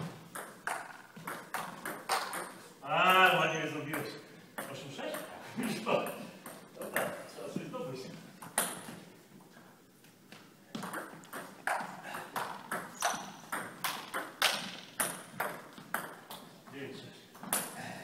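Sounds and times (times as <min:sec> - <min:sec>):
table tennis ball hits: 0:00.0 - 0:02.6, 0:08.4 - 0:09.0, 0:10.8 - 0:16.5, 0:17.4 - 0:17.8.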